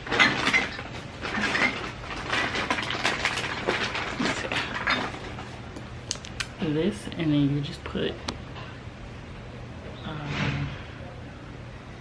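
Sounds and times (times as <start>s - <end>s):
objects clicking and rattling: 0.0s - 6.6s.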